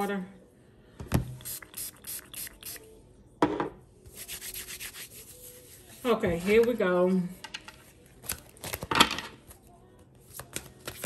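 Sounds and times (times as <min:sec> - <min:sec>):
spray bottle spritzing: 0:01.4 - 0:02.8.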